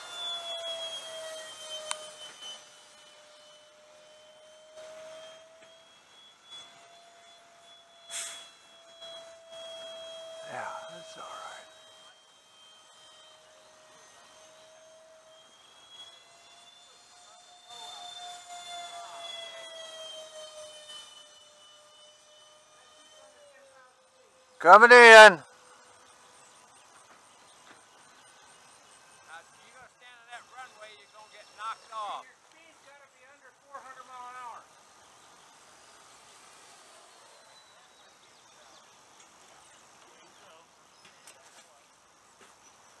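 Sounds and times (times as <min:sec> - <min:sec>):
model jet fans whining: 0:00.0 - 0:43.0
outdoor ambience with hiss: 0:00.0 - 0:43.0.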